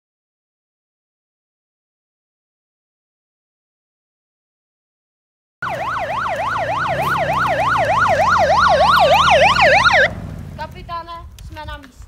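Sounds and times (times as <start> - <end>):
police siren yelping: 5.6 - 10.2
low rumble: 6.1 - 11.6.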